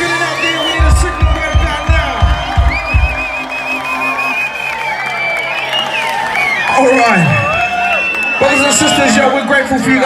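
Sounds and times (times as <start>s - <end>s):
reggae band playing: 0.0s - 4.3s
bass drum beats: 0.0s - 4.4s
crowd cheering and whooping: 0.0s - 10.0s.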